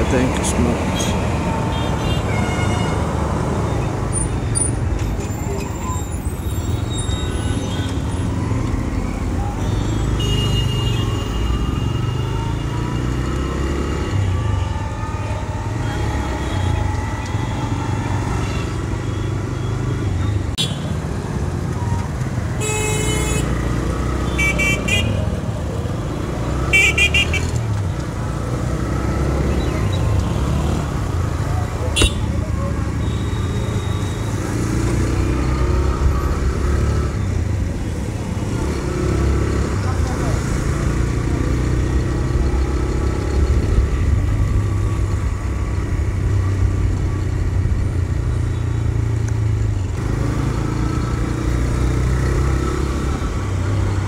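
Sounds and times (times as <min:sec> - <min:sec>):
vehicle horns tooting: 0:01.0 - 0:03.2, 0:09.6 - 0:13.1, 0:22.6 - 0:23.6, 0:24.3 - 0:25.2, 0:26.7 - 0:27.6, 0:31.9 - 0:34.6.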